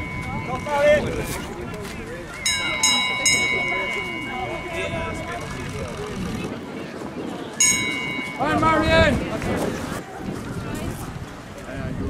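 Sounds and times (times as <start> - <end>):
bell ringing: 0.0 - 6.2, 7.6 - 9.1
spectator chatter: 0.0 - 12.0.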